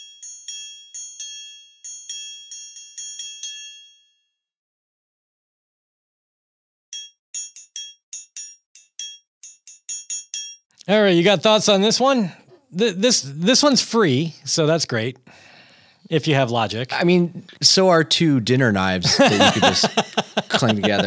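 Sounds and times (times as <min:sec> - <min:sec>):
triangle strikes: 0:06.9 - 0:10.6.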